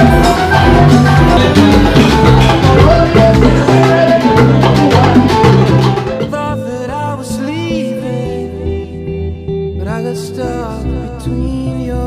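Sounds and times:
hand drums: 0:00.0 - 0:06.4
salsa band playing: 0:00.0 - 0:06.7.

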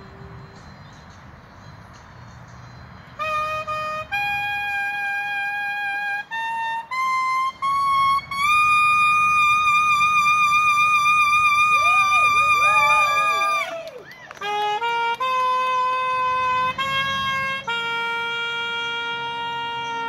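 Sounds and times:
solo saxophone melody: 0:03.2 - 0:13.7, 0:14.4 - 0:20.0.

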